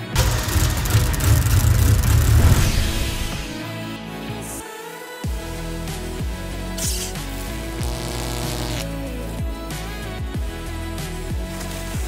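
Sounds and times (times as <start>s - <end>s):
background music: 0.0s - 12.0s
hiss: 6.8s - 7.3s.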